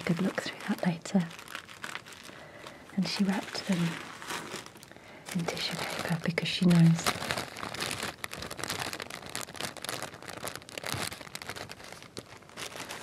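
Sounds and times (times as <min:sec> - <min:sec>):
tissue paper crinkling: 0:00.0 - 0:13.0.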